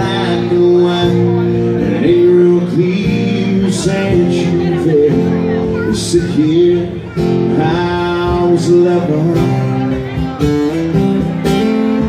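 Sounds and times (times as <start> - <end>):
man singing: 0.0 - 10.8
acoustic guitar strumming: 0.0 - 12.0.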